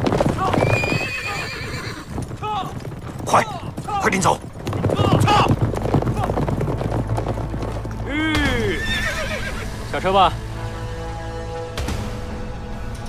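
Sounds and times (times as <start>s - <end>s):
horse hooves clip-clopping: 0.0s - 9.8s
horse whinnying: 0.2s - 9.7s.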